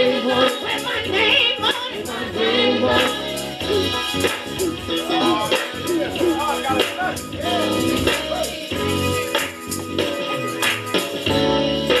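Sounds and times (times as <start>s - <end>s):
gospel choir singing: 0.0s - 9.0s.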